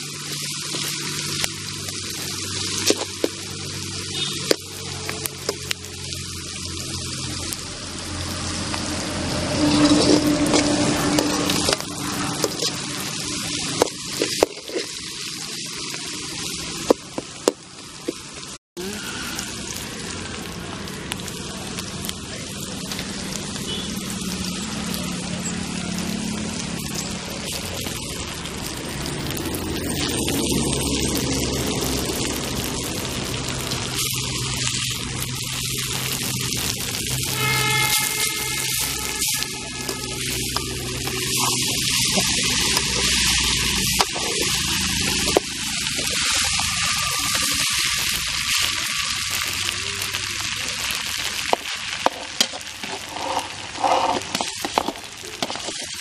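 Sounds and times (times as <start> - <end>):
frying in oil sizzle: 0.0 - 56.0
metal ladle scraping pan: 8.2 - 15.1, 36.6 - 48.7, 52.0 - 56.0.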